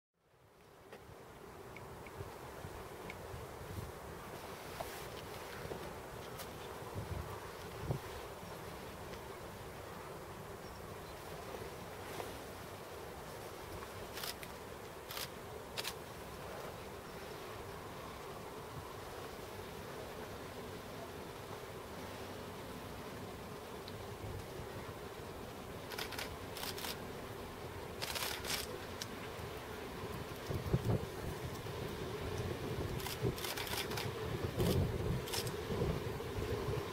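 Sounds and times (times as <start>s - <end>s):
faint ticks: 1.7s - 2.4s, 3.0s - 3.3s, 13.7s - 16.4s, 23.8s - 24.6s, 25.8s - 27.1s, 28.0s - 35.6s
wind gusts on microphone: 1.8s - 9.0s, 29.7s - 36.9s.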